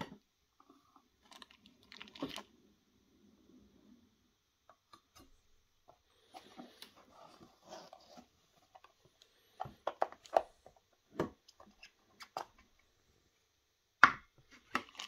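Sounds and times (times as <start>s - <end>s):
plastic boxes clicking and tapping: 9.6s - 12.7s.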